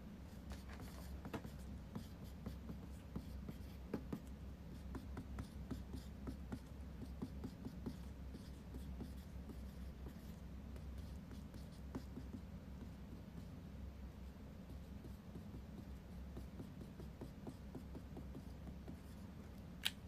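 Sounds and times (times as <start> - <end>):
low steady hum: 0.0 - 20.0.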